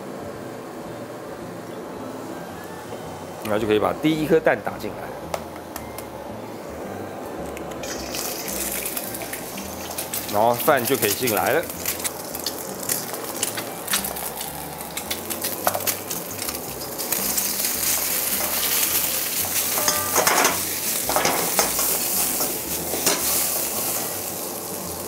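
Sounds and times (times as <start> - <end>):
rice and egg sizzling in wok: 7.8 - 25.0
metal ladle scraping wok: 19.5 - 24.1.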